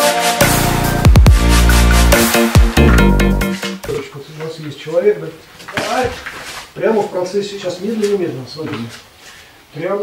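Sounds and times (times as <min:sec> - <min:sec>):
person speaking: 0:03.8 - 0:09.1.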